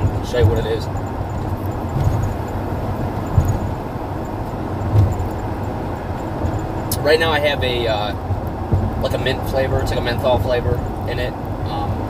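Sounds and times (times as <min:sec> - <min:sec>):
low rumble inside vehicle cabin: 0:00.0 - 0:12.0.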